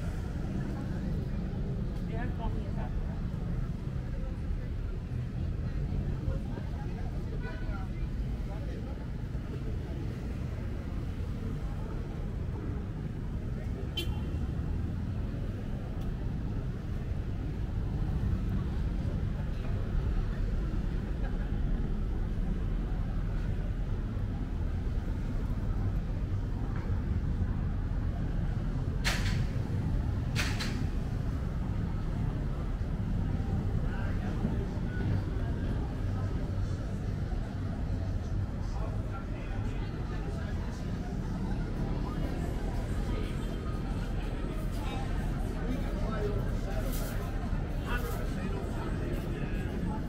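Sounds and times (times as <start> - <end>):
people talking: 0.0 - 50.0
traffic rumble: 0.0 - 50.0.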